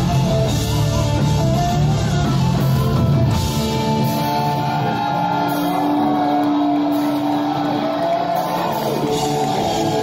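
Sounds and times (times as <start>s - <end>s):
metal band with distorted guitars: 0.0s - 10.0s.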